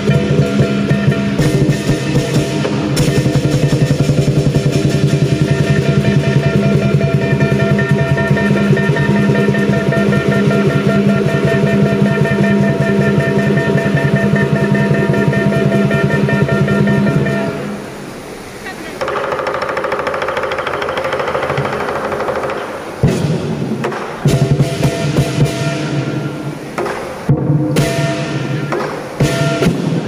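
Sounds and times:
large drum fast roll: 0.0s - 17.5s, 19.0s - 26.5s
ringing gong: 0.0s - 17.9s
crashing cymbals: 0.0s - 18.4s, 20.2s - 30.0s.

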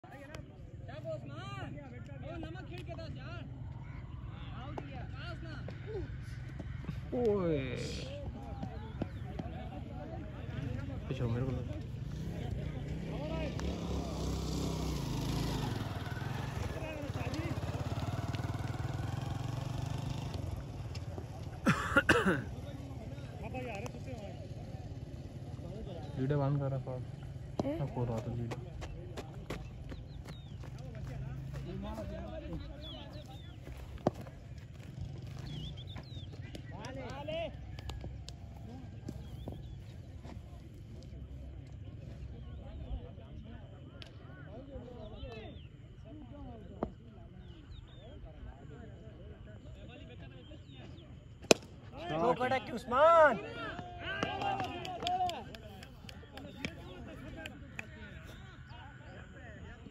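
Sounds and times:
faint distant voices: 0.0s - 59.9s
small engine running: 11.4s - 21.0s
bird chirps: 29.6s - 37.8s.

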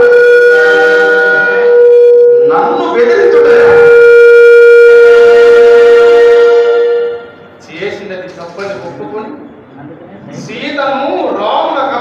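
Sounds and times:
conch shell blown: 0.0s - 7.6s.

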